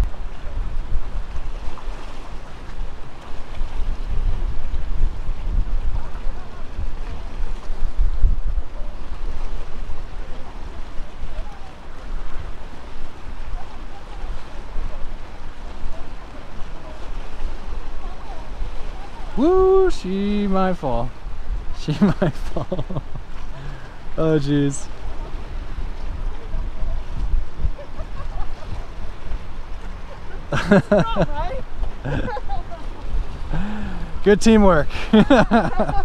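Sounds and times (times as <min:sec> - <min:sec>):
wind buffeting microphone: 0:00.0 - 0:20.0, 0:21.0 - 0:36.0
choppy water: 0:00.0 - 0:36.0.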